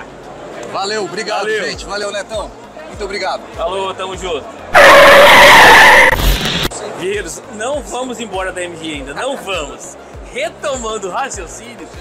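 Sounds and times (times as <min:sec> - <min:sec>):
tyre screech skid: 0:04.8 - 0:06.7.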